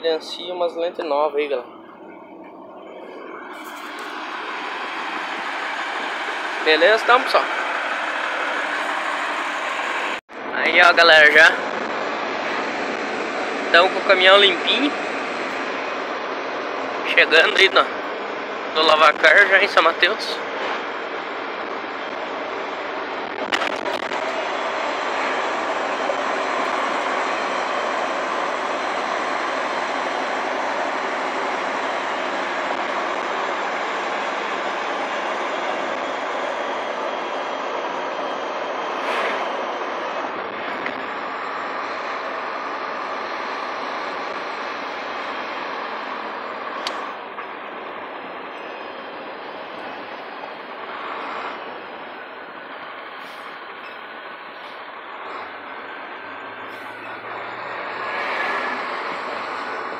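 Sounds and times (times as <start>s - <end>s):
truck engine and road noise: 0.0s - 59.9s.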